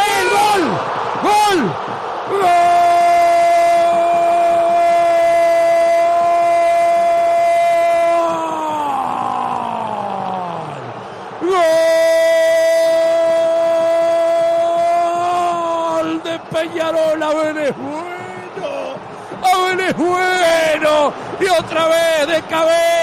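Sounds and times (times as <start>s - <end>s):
man shouting long goal cry: 0.0s - 23.0s.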